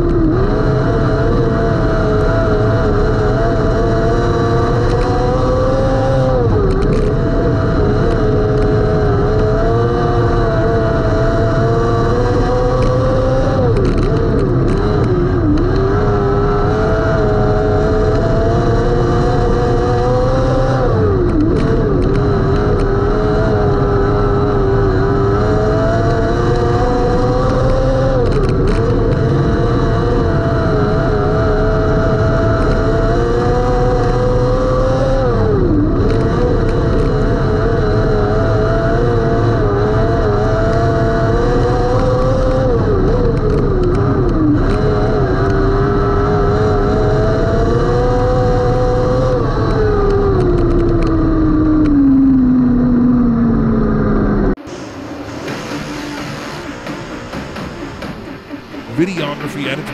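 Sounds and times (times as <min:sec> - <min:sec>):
race car engine revving: 0:00.0 - 0:59.9.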